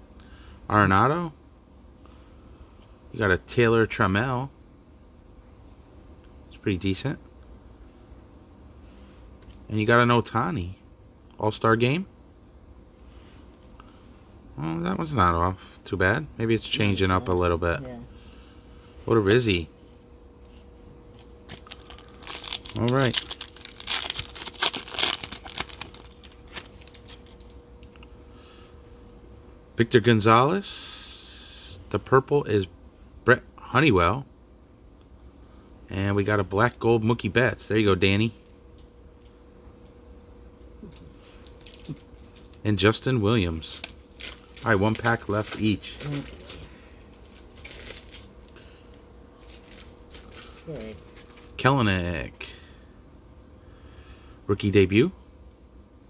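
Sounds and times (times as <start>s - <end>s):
low electrical hum: 0.0s - 56.0s
foil wrapper crinkling: 21.2s - 28.0s, 40.8s - 42.6s, 43.2s - 48.5s, 49.4s - 51.6s
rustling of card pack being opened: 21.2s - 28.0s, 40.9s - 42.6s, 43.3s - 48.3s, 49.4s - 51.6s.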